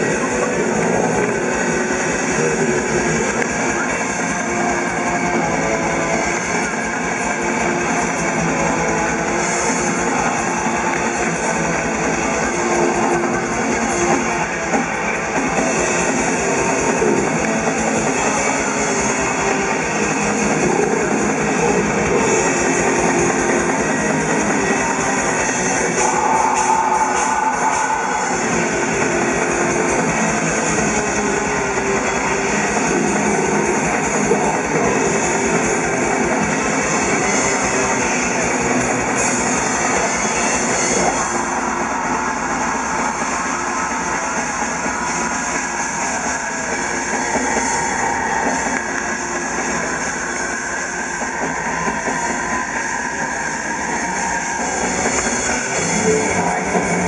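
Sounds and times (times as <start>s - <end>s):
distorted electric guitars: 0.0s - 57.0s
fast drumming: 0.0s - 57.0s.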